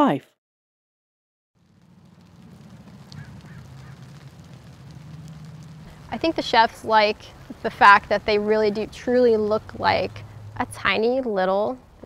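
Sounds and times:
faint background noise: 1.6s - 12.0s
low steady hum: 1.6s - 12.0s.

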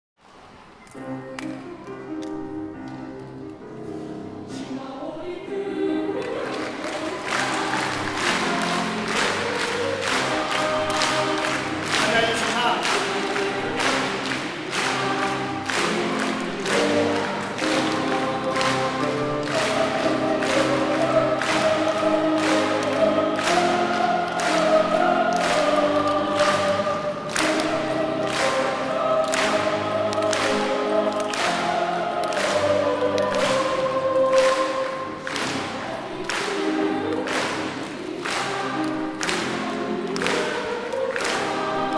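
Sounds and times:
boys' choir singing: 4.5s - 41.9s
steady rhythmic beat: 7.0s - 41.9s.

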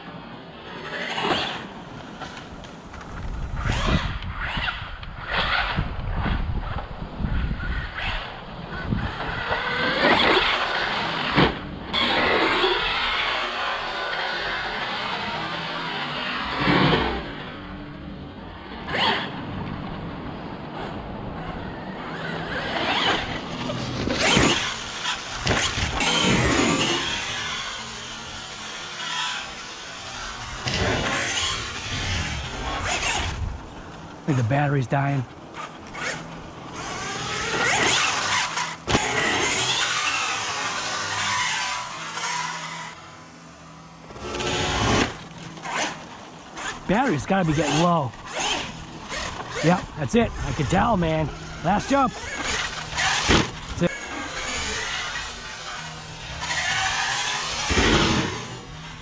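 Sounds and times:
electric motor whining: 0.0s - 59.0s
tyres on dirt: 0.0s - 59.0s.

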